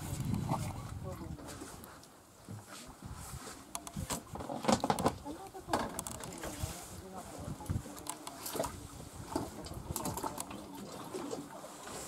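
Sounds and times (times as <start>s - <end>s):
clicks and knocks on boat deck: 3.8s - 6.6s.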